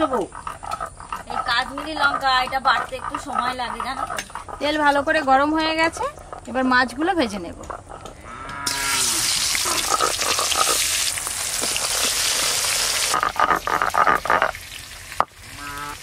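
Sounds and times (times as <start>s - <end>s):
pulsed croaking calls: 0.0s - 11.1s, 12.6s - 14.6s, 15.5s - 16.0s
fish frying in hot oil: 8.7s - 16.0s.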